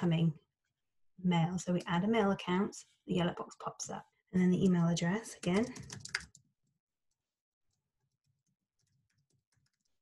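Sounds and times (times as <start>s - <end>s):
typing on keyboard: 5.4s - 6.5s, 8.1s - 10.0s.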